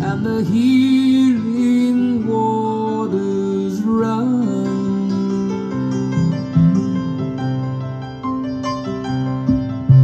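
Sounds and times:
pop ballad with guitar over loudspeakers: 0.0s - 10.0s.

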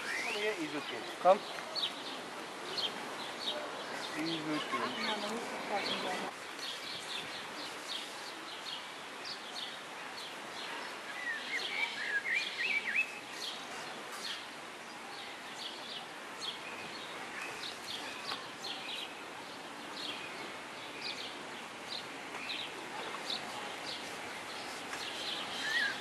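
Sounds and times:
outdoor background noise: 0.0s - 26.0s
small birds chirping: 0.0s - 26.0s.

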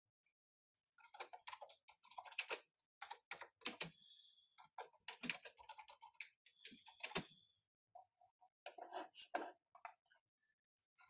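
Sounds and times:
computer keyboard typing: 1.0s - 4.0s, 4.6s - 7.3s.

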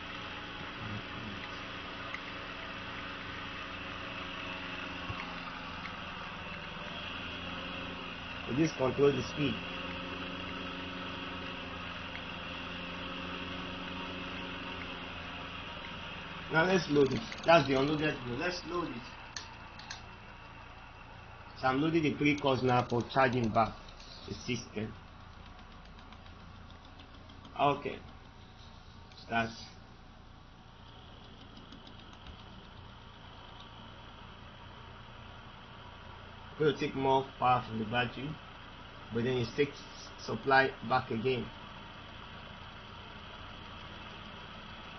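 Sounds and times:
motor humming with high whine: 0.0s - 44.9s.

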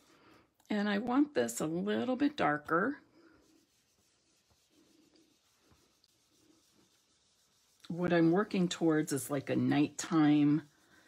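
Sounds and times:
brush swirling on cardstock: 0.0s - 11.0s.

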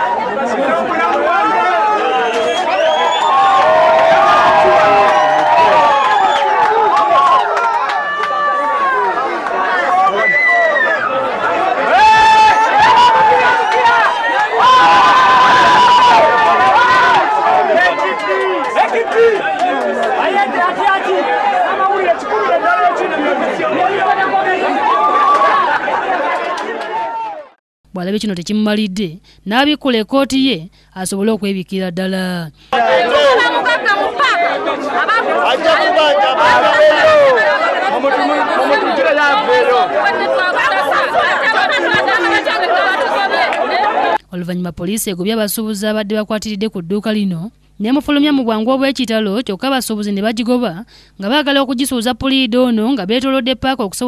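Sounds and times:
people chattering: 0.0s - 2.8s, 16.9s - 26.8s, 32.8s - 44.6s
crowd talking loudly: 0.0s - 14.7s, 16.0s - 27.5s, 32.7s - 44.2s
raised voices: 0.0s - 27.5s, 32.7s - 44.3s.

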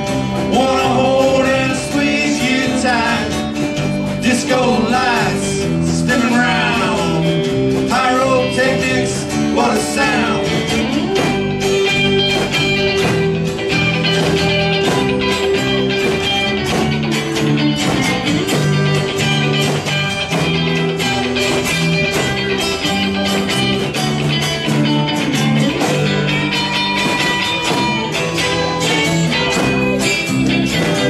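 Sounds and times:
electric guitar bending lead notes: 0.0s - 31.0s
live band playing: 0.0s - 31.0s.

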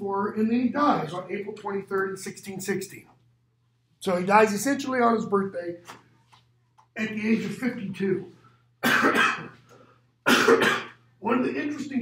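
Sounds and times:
man coughing: 8.8s - 9.6s, 10.2s - 11.0s.

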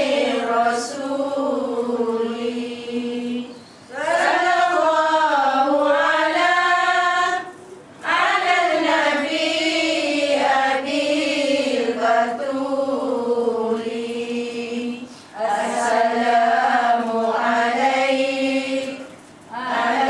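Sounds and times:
women chanting in unison: 0.0s - 20.0s.

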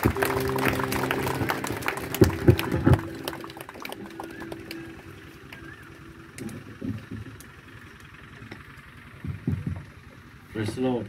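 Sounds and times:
electronic keyboard chord: 0.0s - 6.8s.

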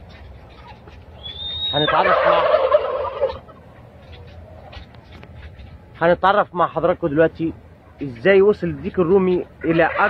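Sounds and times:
turkeys gobbling: 0.2s - 4.8s, 9.6s - 10.0s.

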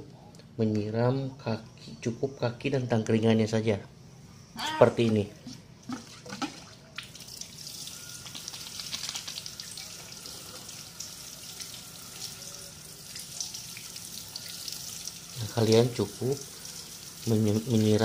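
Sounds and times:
water pattering on cage: 5.9s - 11.7s.

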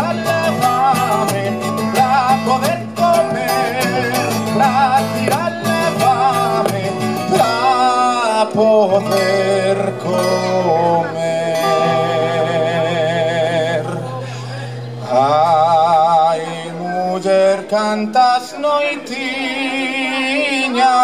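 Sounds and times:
acoustic guitar: 0.0s - 21.0s
man singing folk song: 0.0s - 21.0s.

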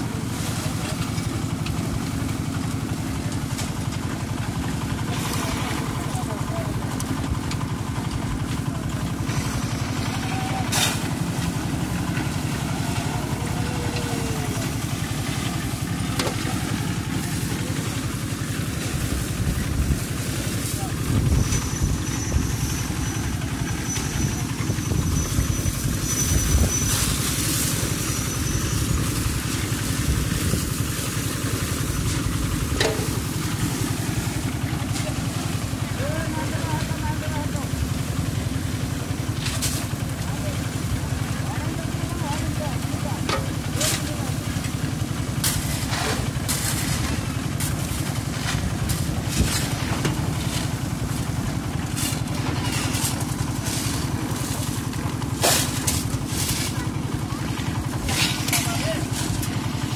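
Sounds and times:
concrete mixer engine drone: 0.0s - 59.9s.

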